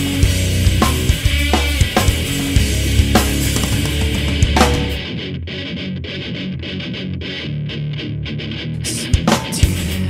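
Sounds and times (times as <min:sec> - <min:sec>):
electric guitar picked pattern: 0:00.0 - 0:10.0.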